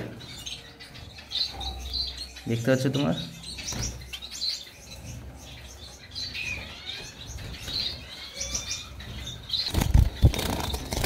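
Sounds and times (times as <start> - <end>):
finches chirping: 0.0 - 11.0.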